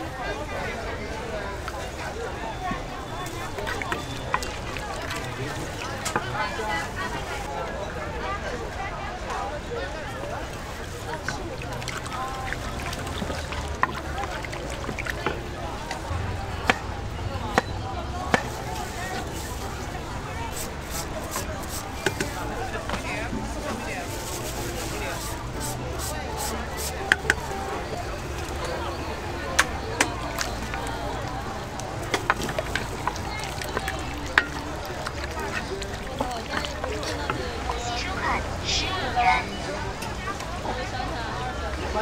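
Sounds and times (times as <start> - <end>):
ladle stirring sloshing sauce: 10.6 - 16.1, 18.4 - 27.6, 30.0 - 38.0.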